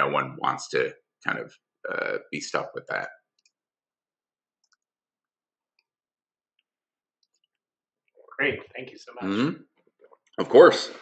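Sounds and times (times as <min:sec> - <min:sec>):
man speaking: 0:00.0 - 0:03.1, 0:08.3 - 0:09.6, 0:10.4 - 0:11.0.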